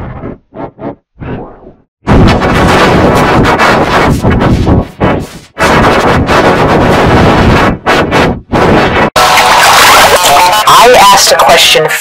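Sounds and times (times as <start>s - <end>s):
harsh distorted crackling noise: 0.0s - 12.0s.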